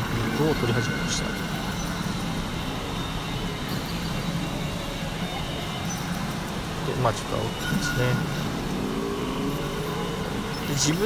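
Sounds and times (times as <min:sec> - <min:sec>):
din of many machines: 0:00.0 - 0:11.0
faint electronic tones: 0:00.0 - 0:11.0.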